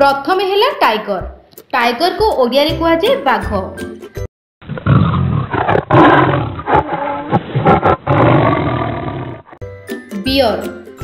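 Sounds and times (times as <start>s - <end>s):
tiger roaring and growling: 4.6s - 9.6s.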